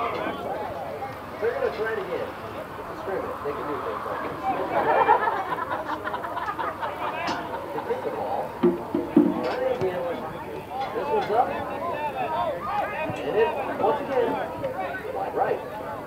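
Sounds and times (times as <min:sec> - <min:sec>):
people talking and calling out: 0:00.0 - 0:16.0.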